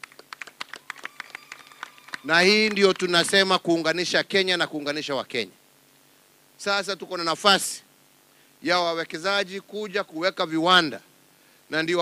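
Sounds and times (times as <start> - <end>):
people clapping: 0.0 - 3.6.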